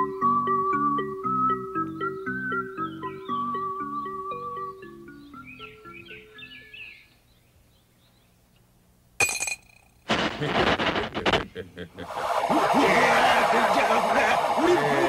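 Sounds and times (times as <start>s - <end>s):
cartoon background music: 0.0s - 6.7s
sharp clinking hit: 9.2s - 10.0s
loud noisy sound effect: 10.1s - 15.0s
laugh: 10.2s - 12.2s.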